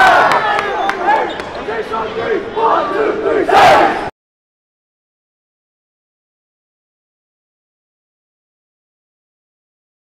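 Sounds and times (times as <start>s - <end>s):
group shout: 0.0s - 1.3s, 2.2s - 4.1s
fans cheering: 0.0s - 4.1s
many voices shouting: 0.0s - 4.1s.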